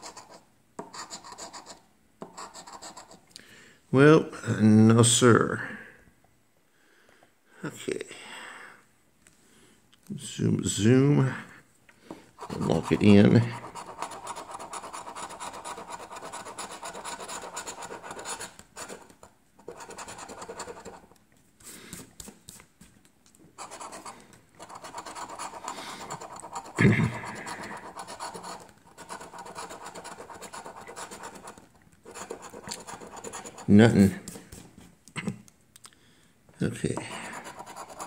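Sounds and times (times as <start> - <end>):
coin scratching lottery ticket: 0.0 - 1.8, 12.4 - 21.0, 23.6 - 33.8, 37.3 - 38.0.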